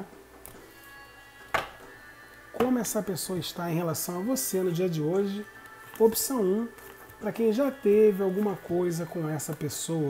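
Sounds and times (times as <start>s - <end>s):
soft background music: 0.0s - 10.0s
cards tapped on table: 1.5s - 1.8s.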